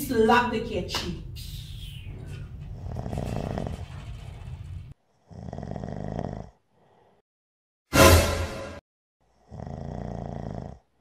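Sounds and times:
man snoring: 2.8 - 3.8, 5.2 - 7.2, 9.3 - 11.0.

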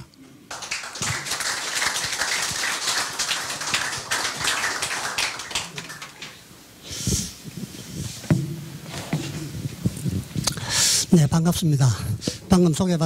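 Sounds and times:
audience applauding: 0.5 - 6.5.

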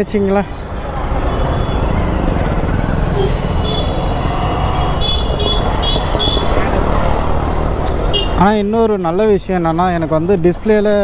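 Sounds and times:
motorcycle engine rumbling: 0.6 - 8.7.

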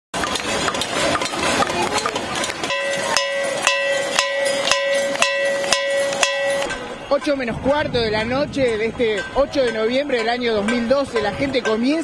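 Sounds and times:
metal pan struck ringing: 0.2 - 7.4
pots and pans banging: 0.2 - 7.4.

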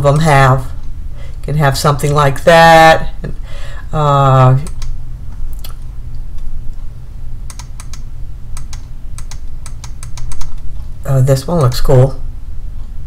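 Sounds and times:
steady low hum: 0.0 - 13.0
computer mouse clicks: 4.6 - 5.0, 7.5 - 10.7.

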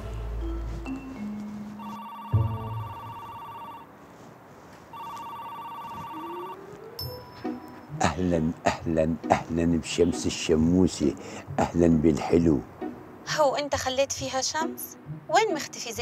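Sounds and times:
light music notes: 0.0 - 3.2, 6.2 - 16.0
mobile phone ringing: 1.7 - 3.9, 4.9 - 7.9.

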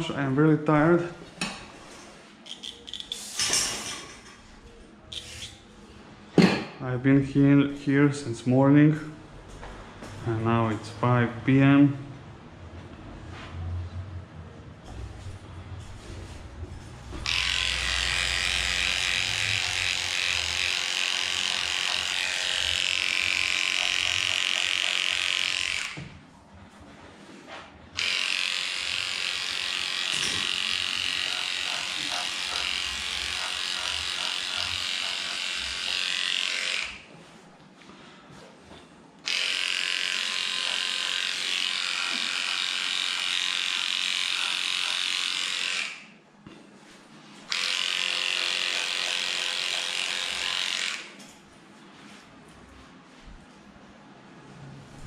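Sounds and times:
dog clipper motor buzzing: 17.2 - 26.1, 28.0 - 37.1, 39.2 - 46.1, 47.5 - 51.2.

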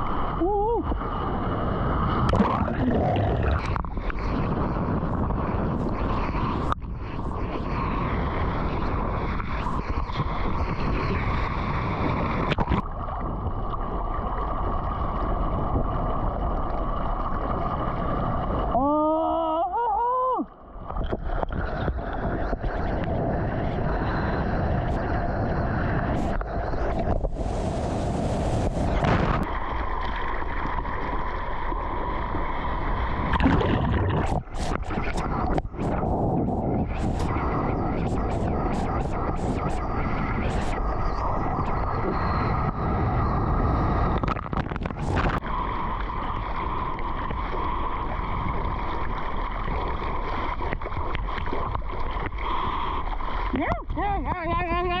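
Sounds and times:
water rushing and splashing: 0.0 - 19.2, 20.4 - 55.0
wind on microphone: 0.0 - 55.0
person whooping: 0.4 - 0.9, 18.8 - 20.5.

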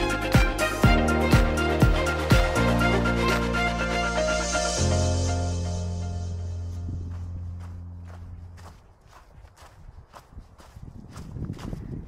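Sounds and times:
background music: 0.0 - 8.2
footsteps on snow: 5.1 - 12.0.

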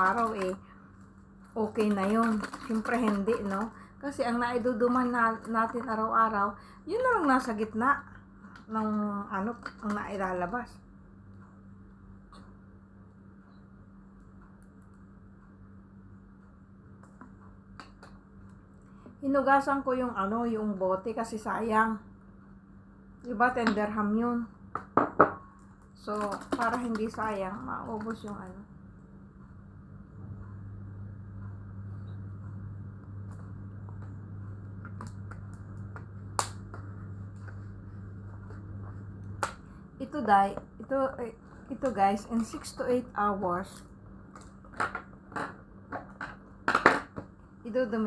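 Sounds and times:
steady low hum: 0.0 - 48.0
plastic bottle crackling: 1.6 - 3.8.

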